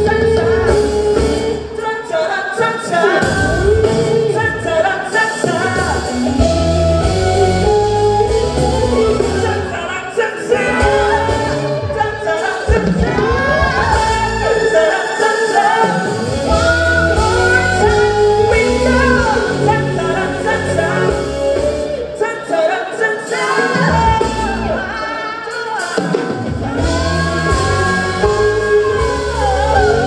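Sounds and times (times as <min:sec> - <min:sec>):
keyboards and drums band: 0:00.0 - 0:30.0
singers performing live: 0:00.0 - 0:30.0
bass notes: 0:05.6 - 0:09.9, 0:10.5 - 0:12.1, 0:12.8 - 0:14.6, 0:16.2 - 0:22.1, 0:26.6 - 0:30.0.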